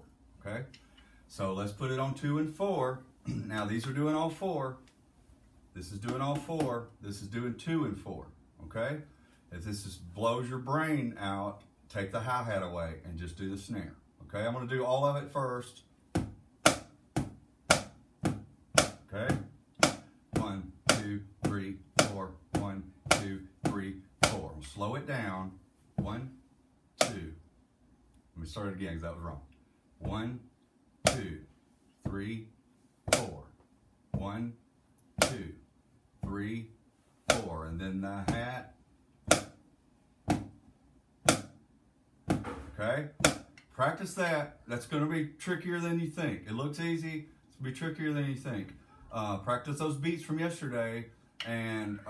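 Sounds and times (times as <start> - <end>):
drumsticks tapping a book: 16.2 - 24.4, 37.3 - 37.5, 39.3 - 39.6, 41.3 - 41.6, 43.2 - 43.6.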